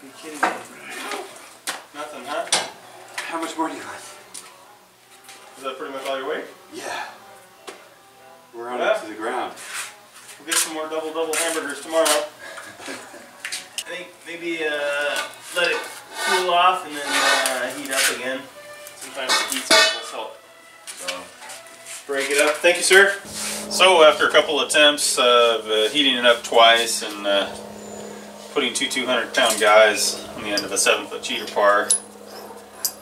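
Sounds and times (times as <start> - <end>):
indistinct voices: 23.2 - 33.0
metallic clinks of steel tools: 31.3 - 33.0.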